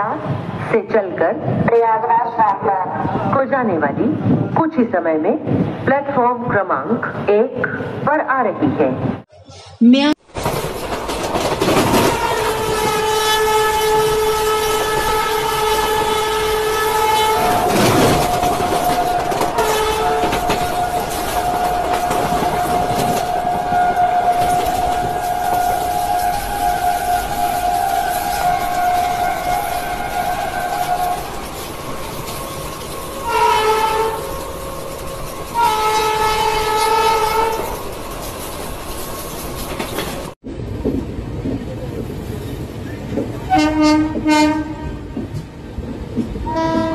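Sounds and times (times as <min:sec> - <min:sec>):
train wheels clattering on rails: 0:10.3 - 0:46.9
train horn blasts: 0:12.0 - 0:31.4, 0:33.2 - 0:34.4, 0:35.5 - 0:37.8, 0:43.5 - 0:45.2, 0:46.4 - 0:46.9.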